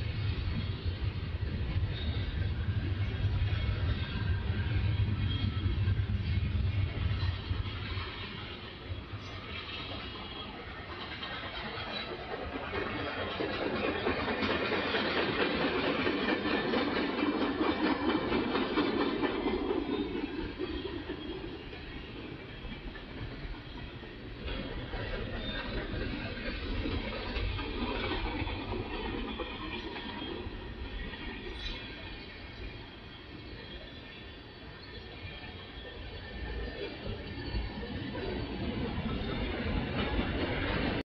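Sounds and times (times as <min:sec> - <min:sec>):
train wheels on rails: 0:00.0 - 0:41.0.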